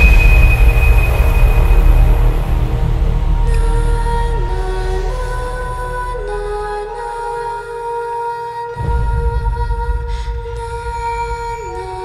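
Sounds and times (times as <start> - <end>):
thin high tone: 0.0 - 2.9
deep rumbling drone: 0.0 - 8.2, 8.8 - 12.0.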